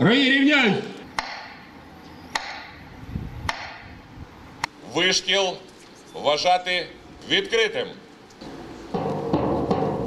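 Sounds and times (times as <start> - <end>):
low outdoor background: 0.0 - 10.0.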